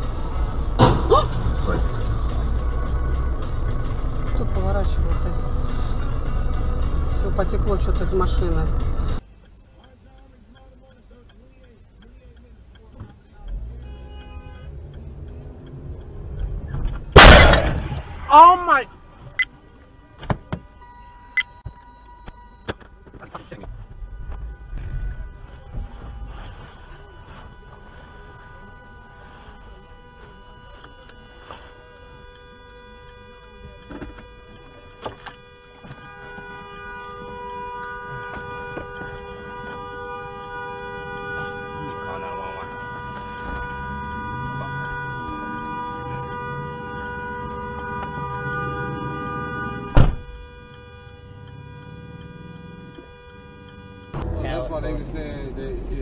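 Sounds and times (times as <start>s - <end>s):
car crash impact: 0.7s - 1.1s, 17.1s - 18.3s
bang: 17.2s - 18.3s
steady sustained tones: 23.6s - 56.0s.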